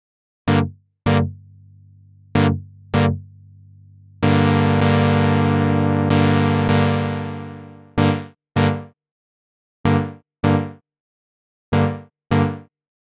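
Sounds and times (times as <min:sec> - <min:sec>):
synthesizer chord stabs: 0:02.4 - 0:03.2, 0:04.2 - 0:08.8.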